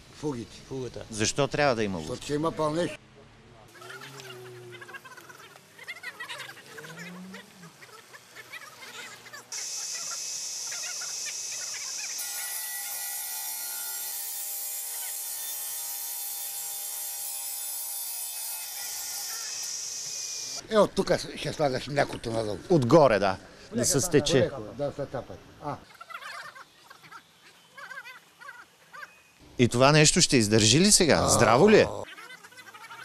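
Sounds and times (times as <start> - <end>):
masonry saw cutting concrete: 9.5 - 20.6.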